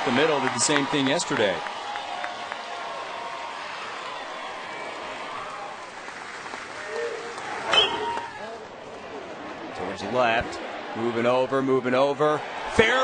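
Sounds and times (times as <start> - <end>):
stadium crowd murmur: 0.0 - 13.0.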